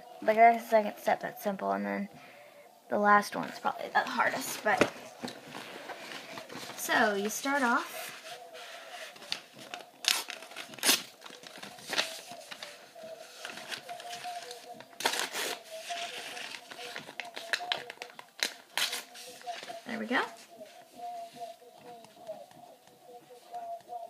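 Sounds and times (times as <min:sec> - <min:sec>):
faint steady hum: 0:00.0 - 0:24.0
paper rustling and crinkling: 0:03.4 - 0:24.0.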